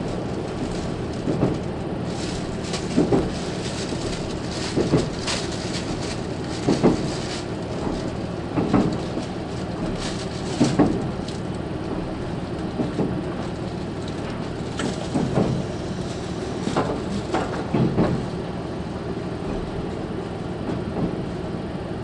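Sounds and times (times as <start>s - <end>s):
train running rumble: 0.0s - 22.0s
wheel clack over rail joint: 0.6s - 18.4s.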